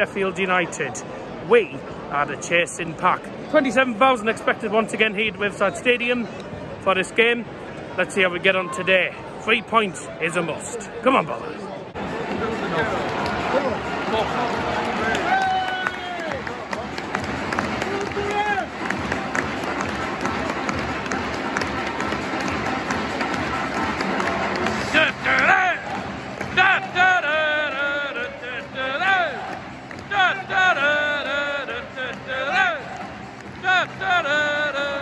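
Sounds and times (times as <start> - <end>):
stadium crowd cheering and clapping: 12.0 - 35.0.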